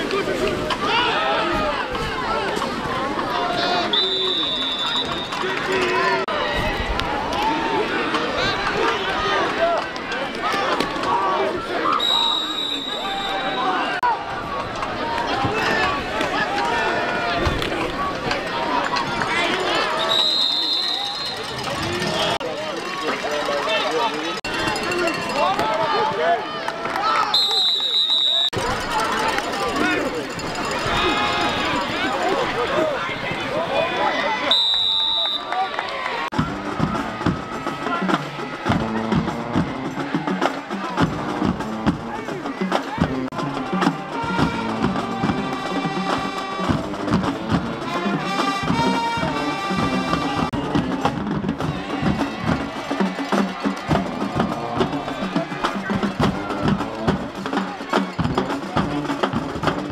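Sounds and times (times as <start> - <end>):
stadium crowd noise: 0.0 - 59.9
short high whistle blast: 12.0 - 13.8, 20.0 - 21.5
music with drums and clicks: 36.4 - 59.9.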